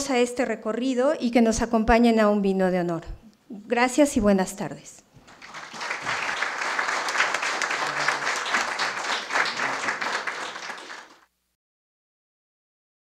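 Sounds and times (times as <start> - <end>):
audience applauding: 5.2 - 11.3.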